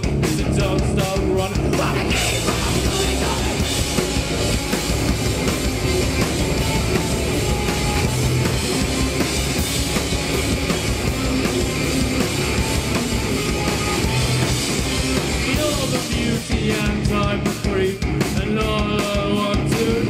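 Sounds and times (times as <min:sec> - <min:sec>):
distorted rock band playing: 0:00.0 - 0:20.0
pounding drum kit: 0:00.0 - 0:20.0.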